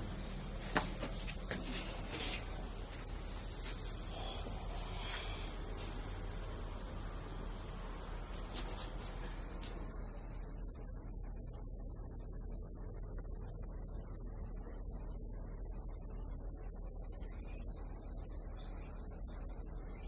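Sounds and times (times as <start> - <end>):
shrill insect chorus: 0.0 - 20.0.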